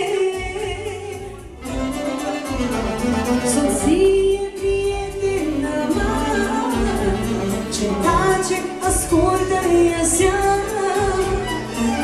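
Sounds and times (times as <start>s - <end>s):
live band playing party music: 0.0s - 12.0s
saxophone: 0.0s - 12.0s
violin: 0.0s - 12.0s.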